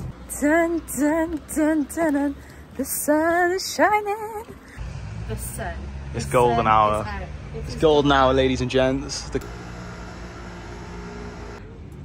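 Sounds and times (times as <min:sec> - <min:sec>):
street ambience: 0:00.0 - 0:12.0
vehicle engine humming: 0:00.0 - 0:12.0.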